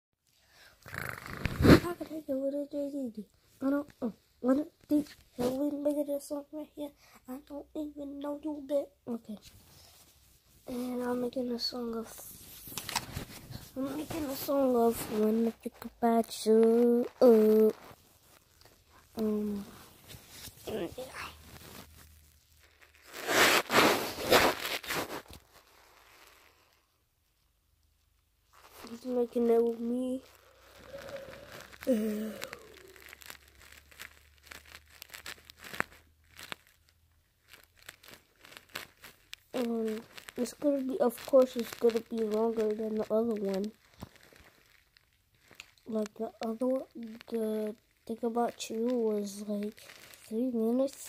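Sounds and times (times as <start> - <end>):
phone microphone rustling and scraping: 1.0 - 2.4, 3.5 - 6.0, 9.3 - 26.6, 28.5 - 36.8, 37.5 - 44.8
boy's voice: 1.6 - 9.5, 10.6 - 12.6, 13.5 - 17.9, 19.0 - 19.9, 20.6 - 21.5, 28.8 - 33.0, 39.5 - 43.8, 45.8 - 51.0.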